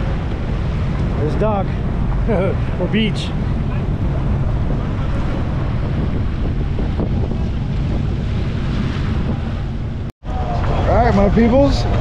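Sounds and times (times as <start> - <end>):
jet ski engine hum: 0.0 - 12.0
water wash: 0.0 - 12.0
wind buffeting microphone: 0.0 - 12.0.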